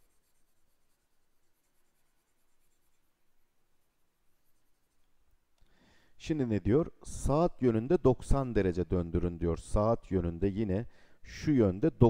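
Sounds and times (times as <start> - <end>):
stylus strokes on tablet: 0.0 - 5.2.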